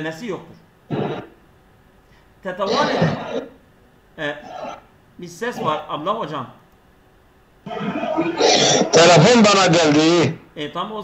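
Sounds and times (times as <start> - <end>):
person clearing throat: 0.9 - 1.4, 2.7 - 3.6, 4.4 - 4.9, 7.7 - 9.4
person speaking over online call: 8.4 - 10.4.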